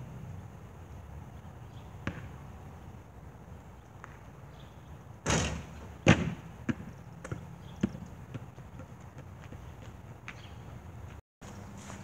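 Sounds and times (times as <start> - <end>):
basketball bouncing on court: 2.0 - 2.4, 5.3 - 10.4.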